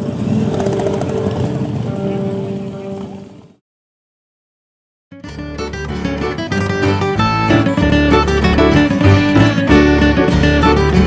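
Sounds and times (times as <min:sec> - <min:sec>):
motorcycle engines rumbling past: 0:00.0 - 0:03.6.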